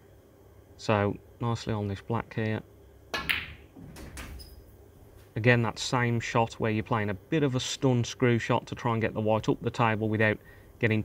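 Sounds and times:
ball dropping into pocket: 0:03.1 - 0:04.6
cue ball striking click: 0:03.2 - 0:04.6.

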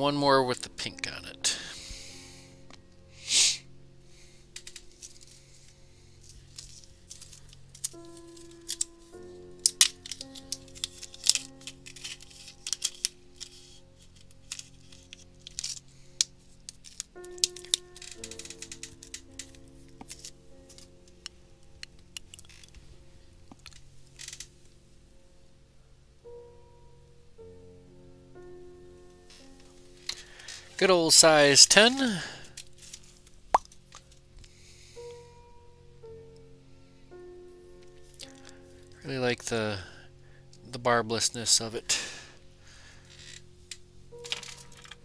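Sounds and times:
quiet instrumental music: 0:00.0 - 0:45.0.

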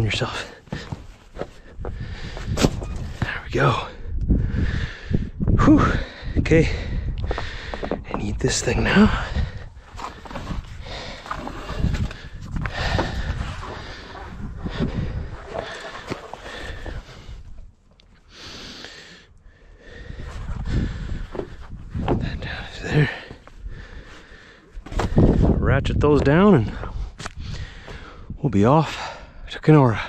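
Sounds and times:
heavy breathing: 0:00.2 - 0:25.6, 0:26.6 - 0:30.0
nylon strap rustling and scraping: 0:09.8 - 0:17.2.

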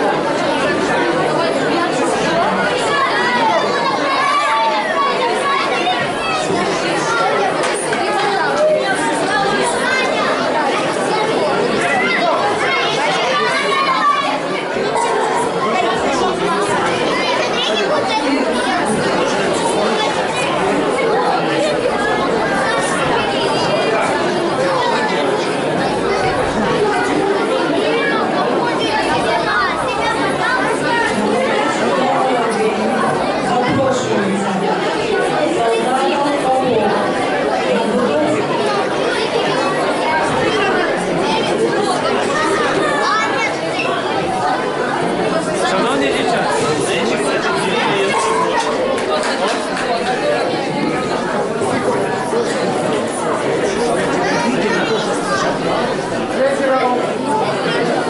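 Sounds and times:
crowd chatter in a large hall: 0:00.0 - 0:58.0.

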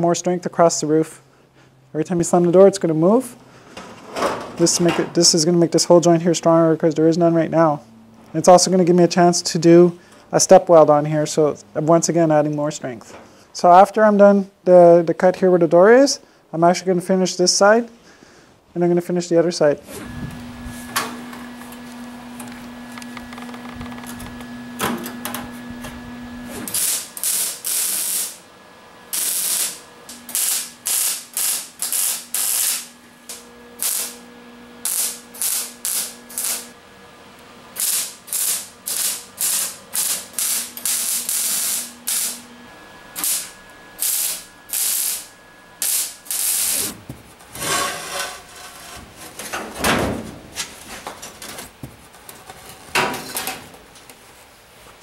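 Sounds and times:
welder crackling bursts: 0:26.5 - 0:28.5, 0:29.1 - 0:36.8, 0:37.7 - 0:42.5, 0:43.1 - 0:47.0
metal knocks and scrapes: 0:46.9 - 0:51.7.

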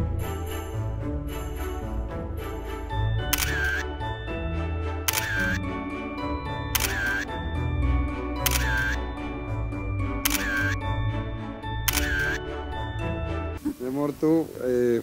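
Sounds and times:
background music: 0:00.0 - 0:14.8
camera shutter clicking: 0:03.3 - 0:03.8, 0:05.1 - 0:05.6, 0:06.8 - 0:07.3, 0:08.4 - 0:09.0, 0:10.2 - 0:10.8, 0:11.9 - 0:12.4.

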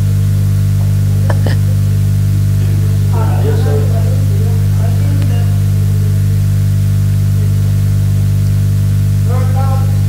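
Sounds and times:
electrical mains hum: 0:00.0 - 0:10.0
person speaking: 0:00.8 - 0:01.9, 0:02.6 - 0:06.6.

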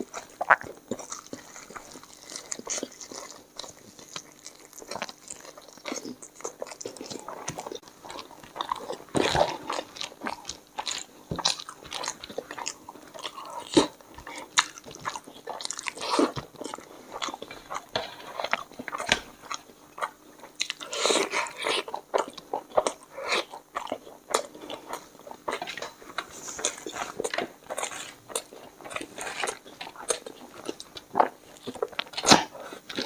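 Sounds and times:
person chewing with mouth open: 0:00.0 - 0:33.0.

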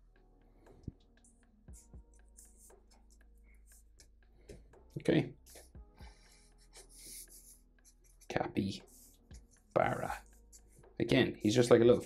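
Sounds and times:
marker pen scratching on paper: 0:01.7 - 0:04.1, 0:05.4 - 0:11.0.

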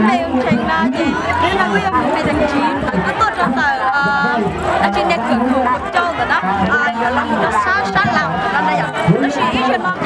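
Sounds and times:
chattering voices: 0:00.0 - 0:10.0.

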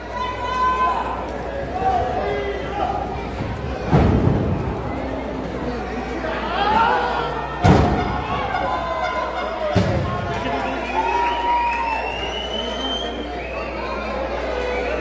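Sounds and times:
spectators shouting: 0:00.0 - 0:05.4, 0:06.0 - 0:15.0.

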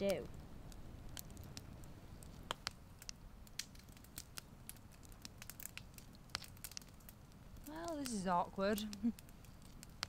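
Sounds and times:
campfire crackling: 0:00.0 - 0:10.0
faint low rumble: 0:00.0 - 0:10.0.

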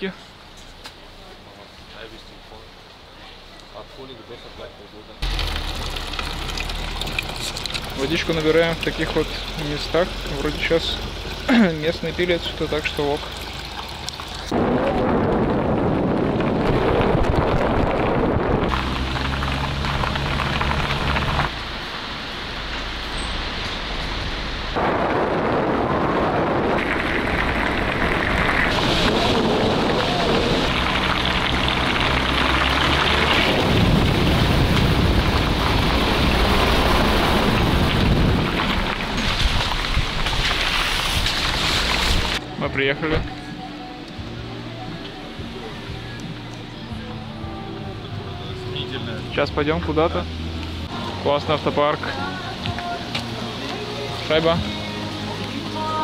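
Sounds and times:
car engine and tyres: 0:00.0 - 0:56.0
wind buffeting microphone: 0:14.5 - 0:18.8, 0:33.4 - 0:42.4.

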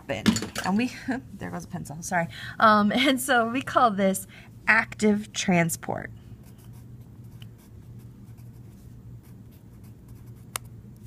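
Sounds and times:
pencil scratching on paper: 0:06.4 - 0:10.6
pencil lead snapping: 0:10.5 - 0:10.7.

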